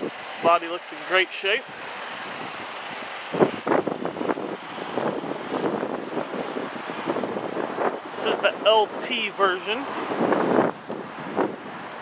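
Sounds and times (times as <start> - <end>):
steady vehicle noise: 0.0 - 12.0.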